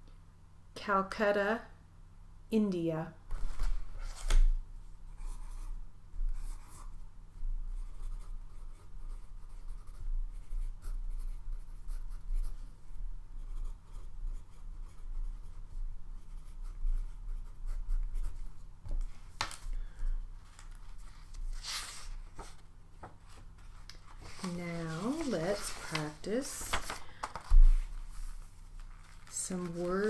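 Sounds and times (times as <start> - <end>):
low electrical hum: 0.0 - 30.0
paper rustling: 3.3 - 4.5, 19.0 - 30.0.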